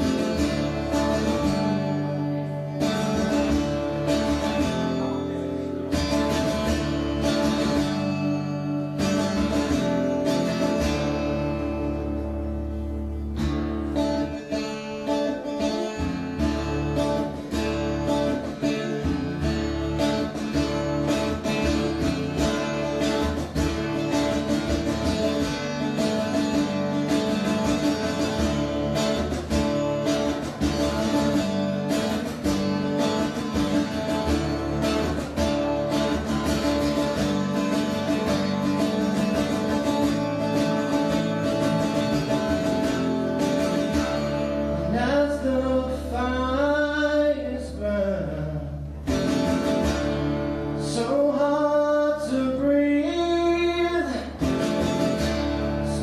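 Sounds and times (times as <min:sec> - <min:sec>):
acoustic guitar: 0:00.0 - 0:56.0.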